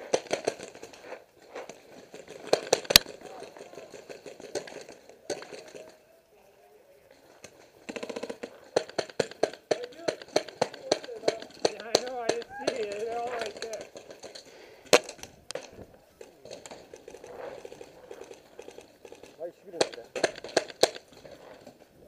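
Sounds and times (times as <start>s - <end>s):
paintball markers firing pops: 0.0s - 6.0s, 7.4s - 21.8s.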